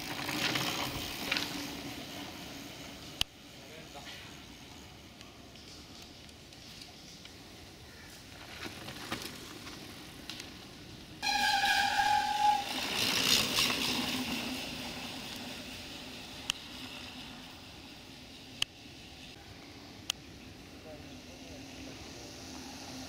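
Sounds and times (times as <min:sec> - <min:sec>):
tyres rushing on dirt: 0:00.0 - 0:03.1, 0:08.3 - 0:18.2
bike brakes squealing: 0:11.2 - 0:15.3.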